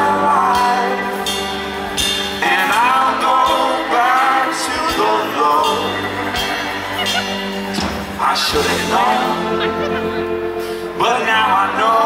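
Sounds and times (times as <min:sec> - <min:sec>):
folk-rock band playing: 0:00.0 - 0:12.0.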